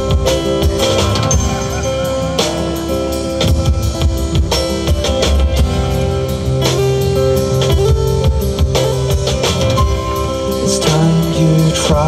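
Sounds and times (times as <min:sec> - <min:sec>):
acoustic guitar strumming: 0:00.0 - 0:12.0
drum kit: 0:00.0 - 0:12.0.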